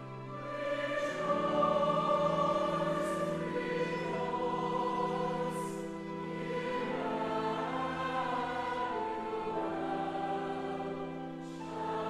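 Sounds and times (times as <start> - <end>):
choir singing sustained chords: 0.0 - 12.0
string accompaniment: 0.0 - 12.0.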